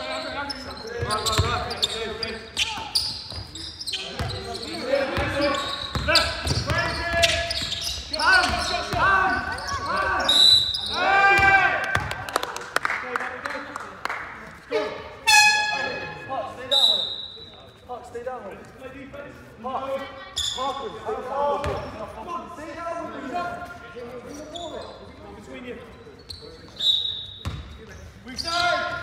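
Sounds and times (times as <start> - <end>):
ball bouncing on wooden court: 5.1 - 7.8, 11.4 - 12.2
players shouting: 8.1 - 12.0.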